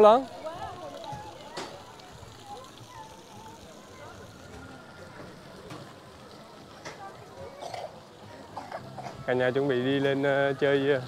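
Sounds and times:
faint chatter of people: 0:00.0 - 0:11.0
outdoor ambience: 0:00.0 - 0:11.0.

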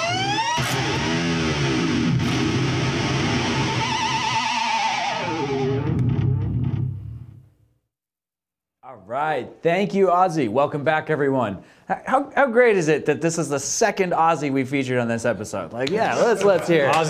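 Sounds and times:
distorted electric guitar dive-bombs: 0:00.0 - 0:07.5.

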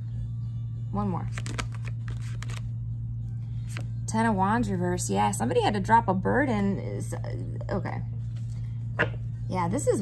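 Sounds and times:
steady low hum: 0:00.0 - 0:10.0
cards clicking and snapping: 0:01.3 - 0:02.6.

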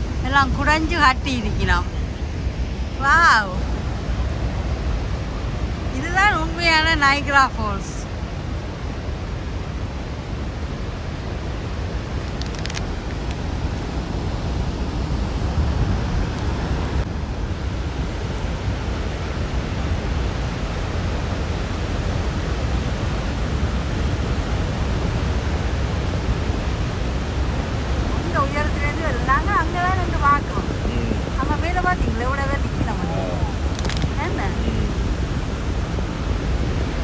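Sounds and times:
waterfall roar: 0:00.0 - 0:37.0
wind: 0:00.0 - 0:37.0.

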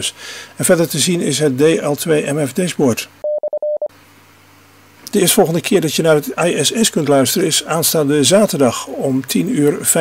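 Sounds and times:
morse code beeps: 0:03.2 - 0:03.9.

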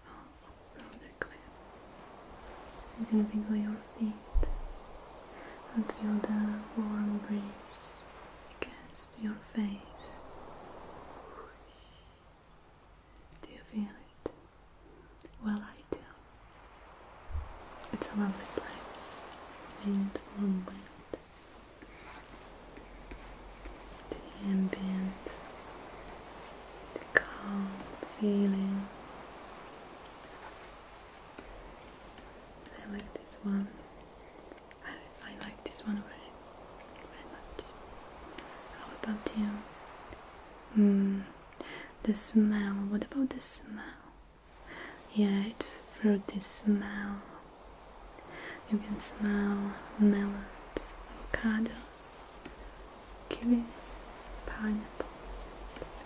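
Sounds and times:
woman whispering: 0:00.0 - 0:01.6, 0:03.0 - 0:04.6, 0:05.4 - 0:10.2, 0:13.4 - 0:14.2, 0:15.2 - 0:16.2, 0:17.9 - 0:21.2, 0:23.9 - 0:25.5, 0:26.9 - 0:29.0, 0:32.6 - 0:33.8, 0:34.8 - 0:37.7, 0:38.3 - 0:39.7, 0:40.7 - 0:44.1, 0:44.7 - 0:47.4, 0:48.2 - 0:52.3, 0:53.2 - 0:53.8, 0:54.4 - 0:55.2
soft rushing noise: 0:00.0 - 0:43.7, 0:44.4 - 0:56.0
crickets chirping: 0:00.0 - 0:56.0.

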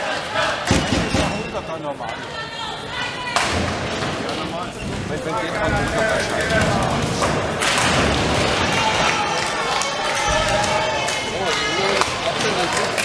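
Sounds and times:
many voices talking: 0:00.0 - 0:13.0.

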